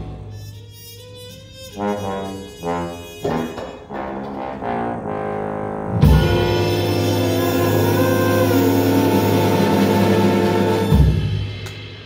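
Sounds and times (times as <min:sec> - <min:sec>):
jazz big band holding chord: 0:00.0 - 0:12.0.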